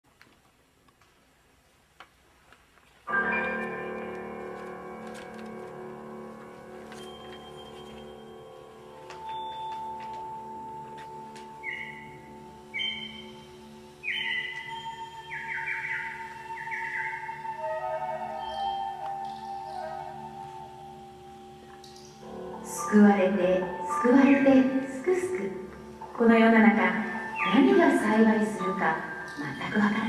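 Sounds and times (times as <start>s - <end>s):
wind orchestra low chords: 10.2s - 30.0s
long sustained tone: 10.4s - 30.0s.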